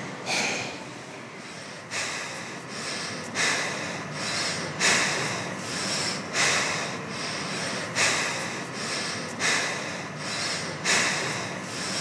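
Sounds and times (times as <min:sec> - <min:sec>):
person breathing loudly: 0:01.4 - 0:12.0.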